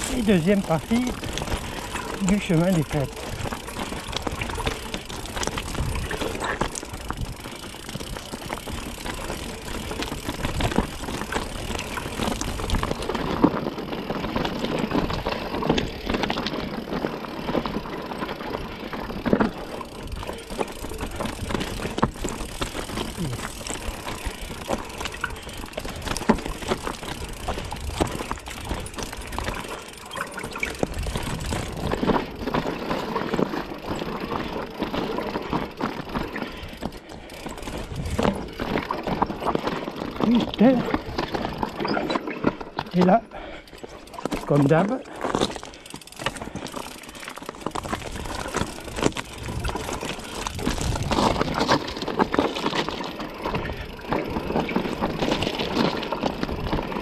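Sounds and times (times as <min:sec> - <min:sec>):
bike knocking and rattling: 0:00.0 - 0:57.0
tyres crunching over rocks: 0:00.0 - 0:57.0.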